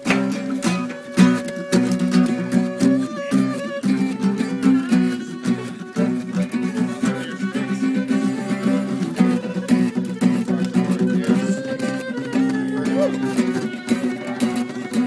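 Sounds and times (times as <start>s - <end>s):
fiddle playing gliding melody: 0.0s - 15.0s
guitar strumming chords: 0.0s - 15.0s.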